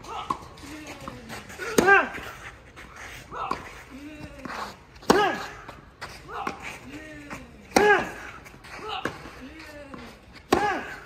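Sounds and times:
racket striking tennis ball: 0:01.5 - 0:02.3, 0:05.0 - 0:05.7, 0:07.7 - 0:08.4, 0:10.4 - 0:11.0.

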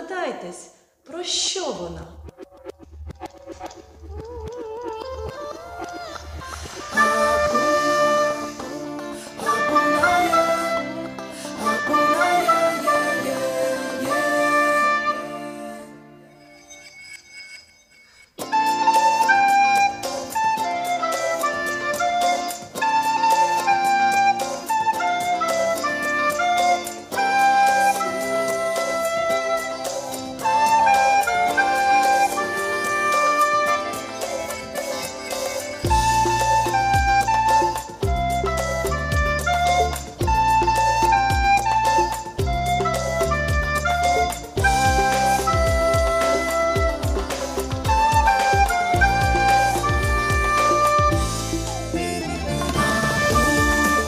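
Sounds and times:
recorder playing melody: 0:04.2 - 0:15.9, 0:18.4 - 0:54.0
backing chords and bass: 0:33.7 - 0:54.0.

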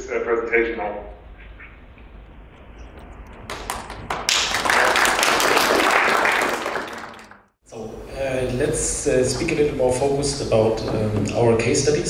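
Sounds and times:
audience applauding: 0:03.4 - 0:07.5.

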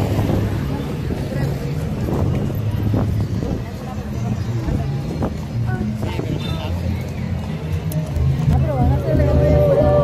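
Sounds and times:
crowd voices: 0:00.0 - 0:10.0
low street rumble: 0:00.0 - 0:10.0.

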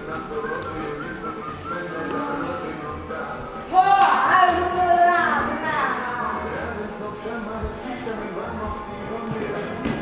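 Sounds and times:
whistle-like melody over held notes: 0:00.0 - 0:02.9.

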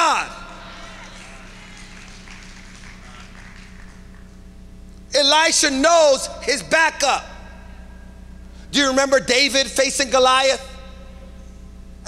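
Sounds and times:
steady low hum: 0:00.0 - 0:12.0
faint clapping: 0:00.8 - 0:04.4.

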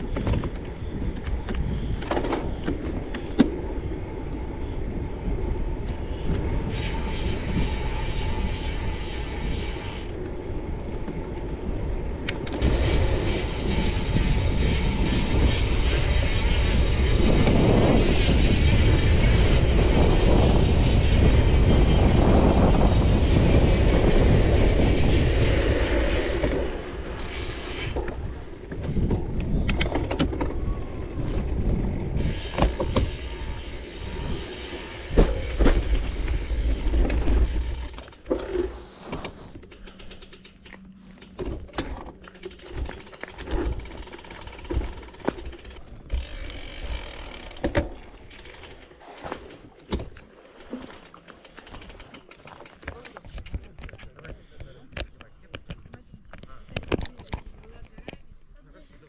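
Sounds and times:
bike knocks and rattles: 0:00.0 - 0:03.7, 0:26.3 - 0:54.4
wind rushing over microphone: 0:00.0 - 0:39.7
bike tyres rolling on gravel: 0:00.0 - 0:54.4.

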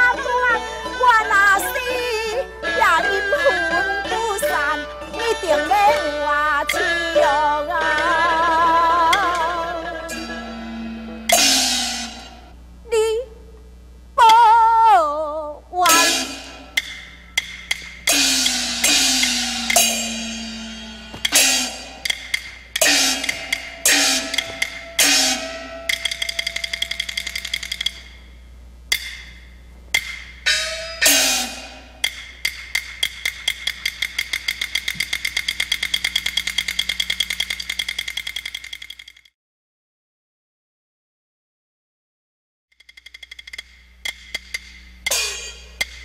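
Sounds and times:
gong strokes: 0:10.0 - 0:12.6, 0:15.8 - 0:28.3, 0:30.4 - 0:32.4, 0:44.8 - 0:46.0
cymbal crashes: 0:10.1 - 0:12.6, 0:15.8 - 0:28.2, 0:28.9 - 0:32.4, 0:44.8 - 0:46.0
clapper clicks: 0:32.0 - 0:39.3.

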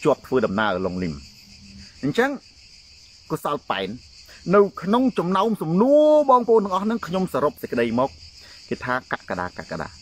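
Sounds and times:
man speaking: 0:00.0 - 0:01.2, 0:02.0 - 0:02.4, 0:03.3 - 0:10.0
insects chirring: 0:00.0 - 0:10.0.

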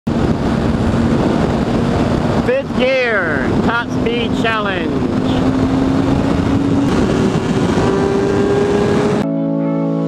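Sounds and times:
motorcycle engine at high revs: 0:00.1 - 0:09.2
wind rushing over microphone: 0:00.1 - 0:09.2.

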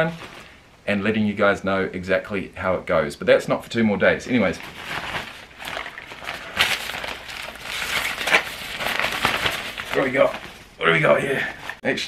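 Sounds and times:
fabric bag rustling: 0:00.0 - 0:00.6, 0:04.3 - 0:11.8.

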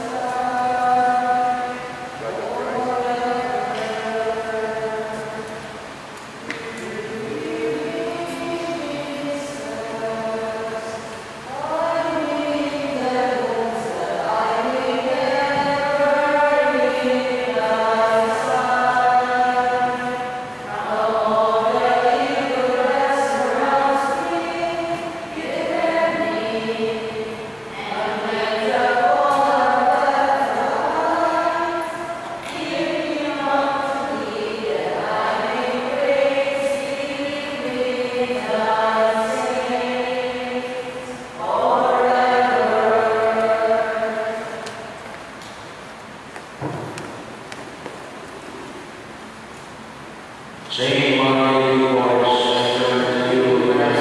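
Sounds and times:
church choir singing a hymn: 0:00.0 - 0:45.6, 0:50.6 - 0:54.0.

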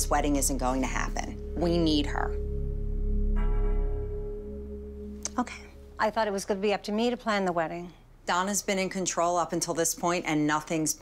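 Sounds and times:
low drone: 0:00.0 - 0:07.1
bright bell-like tone: 0:01.3 - 0:06.3.

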